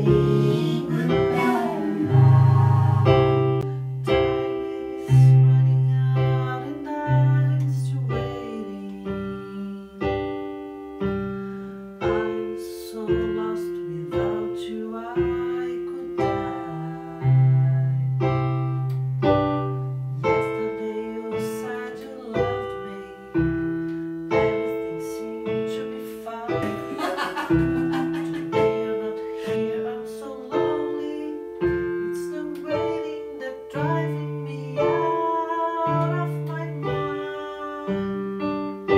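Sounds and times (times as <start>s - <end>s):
deep held bass notes: 0.0s - 4.6s, 26.5s - 29.8s
piano playing slow chords: 0.0s - 38.9s.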